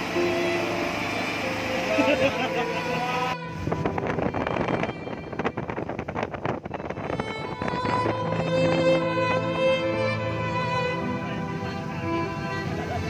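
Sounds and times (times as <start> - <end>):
string music: 0.0 - 13.0
water rushing past boat: 0.0 - 13.0
wind buffeting microphone: 3.4 - 10.9.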